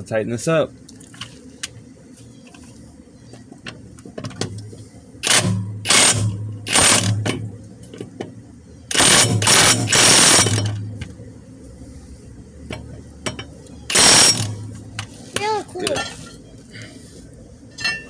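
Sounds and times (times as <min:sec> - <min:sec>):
impact wrench hammering: 0:05.2 - 0:07.5, 0:08.9 - 0:10.8, 0:13.2 - 0:14.7.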